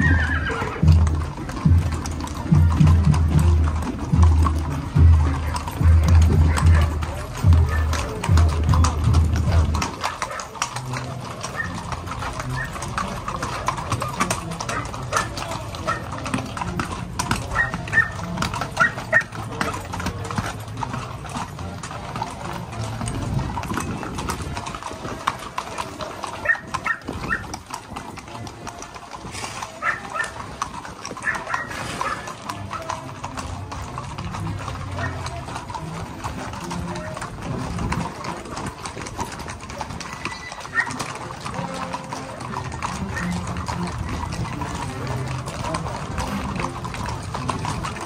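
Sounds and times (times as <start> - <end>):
horse hooves on concrete: 0.0 - 48.0
voices: 0.0 - 48.0.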